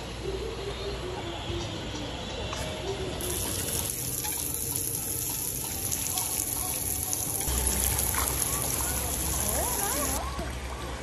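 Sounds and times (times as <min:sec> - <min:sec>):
pool water sloshing and trickling: 0:03.3 - 0:11.0.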